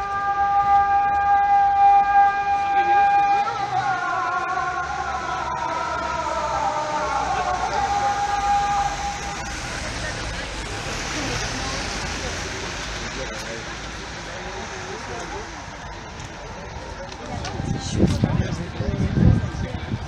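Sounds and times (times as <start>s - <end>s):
busy street hubbub: 0.0s - 20.0s
call to prayer singing: 0.0s - 20.0s
low traffic rumble: 0.0s - 20.0s.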